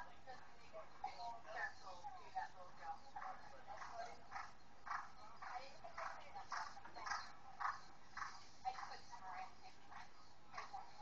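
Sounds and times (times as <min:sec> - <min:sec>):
horse cantering: 0:03.2 - 0:09.0.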